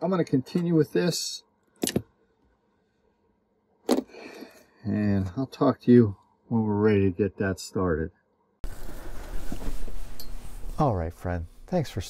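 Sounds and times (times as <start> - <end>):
man talking: 0.0 - 1.4, 4.8 - 8.1, 10.8 - 12.0
soft scrape: 8.6 - 11.7.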